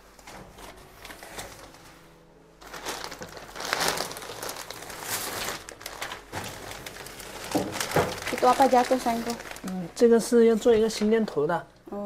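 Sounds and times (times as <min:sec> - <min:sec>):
plastic bags rustling: 0:00.0 - 0:11.4.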